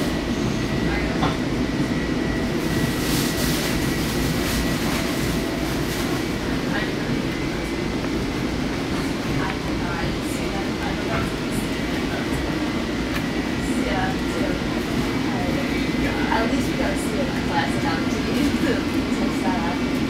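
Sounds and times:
train wheels rumbling: 0:00.0 - 0:20.0.

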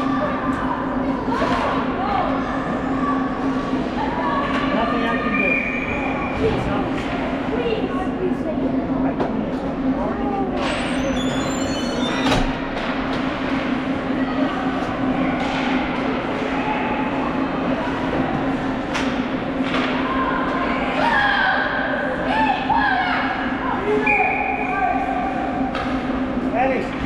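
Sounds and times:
steady low hum: 0:00.0 - 0:27.0
distant shouting voices: 0:19.5 - 0:25.7.

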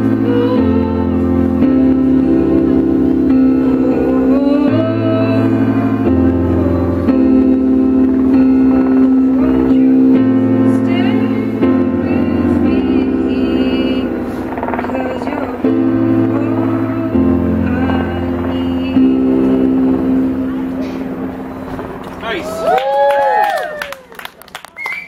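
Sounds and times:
electronic keyboard chords: 0:00.0 - 0:24.8
people clapping: 0:22.0 - 0:25.0
whooping cheers: 0:22.2 - 0:25.0.

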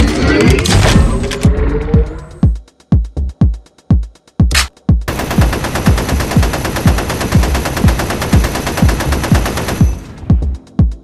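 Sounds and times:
rapid-fire gunshots: 0:05.1 - 0:10.3.

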